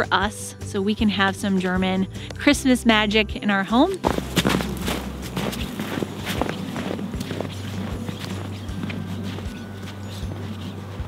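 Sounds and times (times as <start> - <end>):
footsteps crunching in snow: 3.9 - 11.0.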